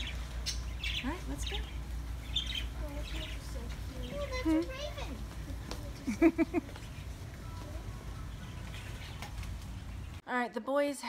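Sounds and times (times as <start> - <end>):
low store ambience rumble: 0.0 - 10.2.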